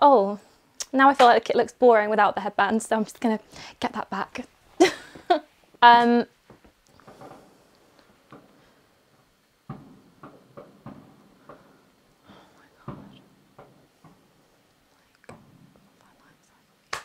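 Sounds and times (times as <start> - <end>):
faint fireworks bangs: 6.4 - 16.0.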